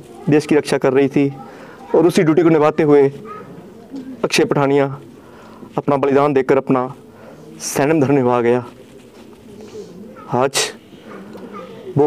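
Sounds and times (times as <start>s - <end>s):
faint background sound: 0.0s - 12.0s
man speaking: 0.2s - 3.2s, 4.2s - 5.1s, 5.7s - 8.9s, 10.2s - 10.9s.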